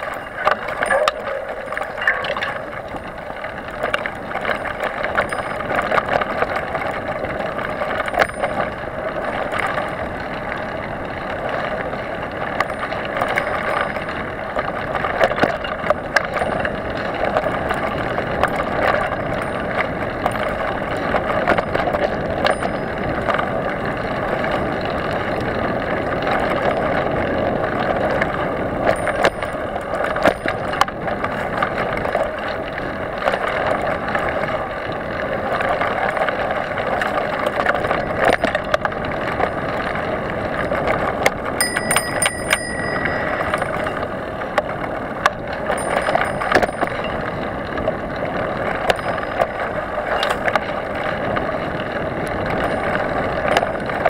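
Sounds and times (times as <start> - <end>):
bike clicks and rattles: 0.0 - 54.0.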